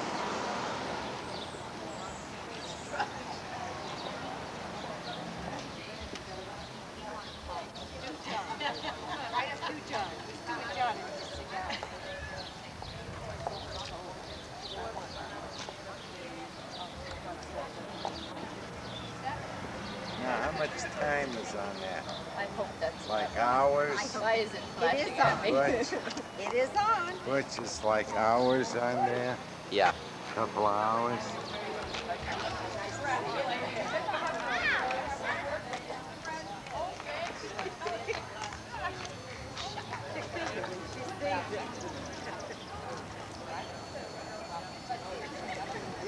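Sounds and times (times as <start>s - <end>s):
people talking indistinctly: 1.3s - 46.0s.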